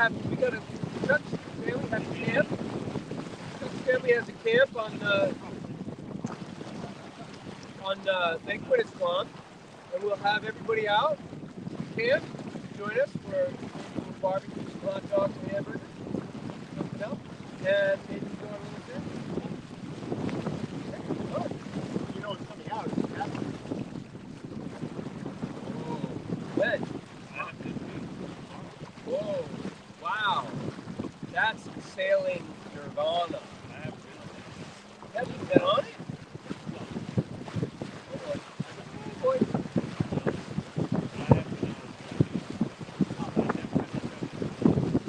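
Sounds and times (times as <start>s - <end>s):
water rushing along boat hull: 0.0s - 45.0s
wind on microphone: 0.0s - 45.0s
voices: 25.8s - 30.5s, 35.0s - 36.0s.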